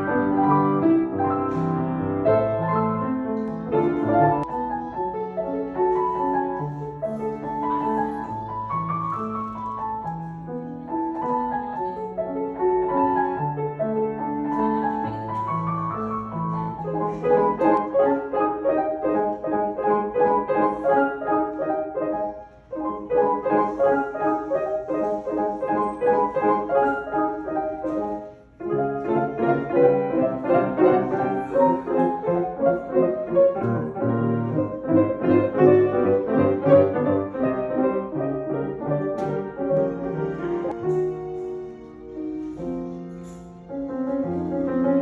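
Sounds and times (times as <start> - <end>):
grand piano: 0.0 - 45.0.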